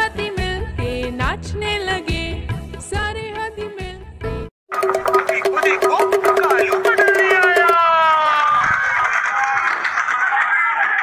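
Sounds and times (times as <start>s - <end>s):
rhythmic percussive clicking: 4.7s - 7.9s.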